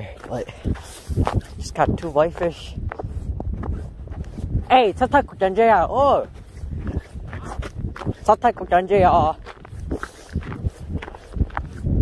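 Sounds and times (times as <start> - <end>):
footsteps on snowy ice: 0.0 - 12.0.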